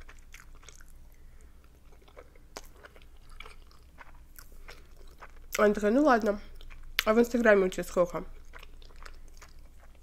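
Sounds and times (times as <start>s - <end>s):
wet mouth chewing clicks: 0.0s - 5.7s, 6.5s - 7.2s, 8.3s - 10.0s.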